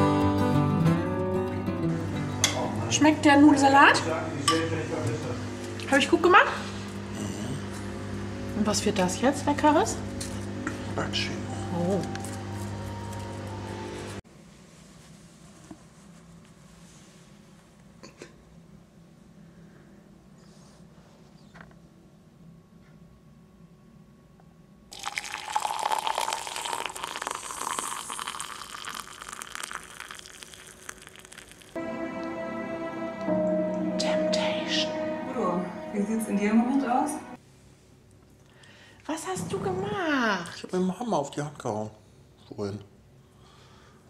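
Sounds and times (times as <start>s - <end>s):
soft sustained background music: 11.0s - 14.2s, 31.8s - 37.4s
water pouring into ceramic bowl: 24.9s - 31.8s.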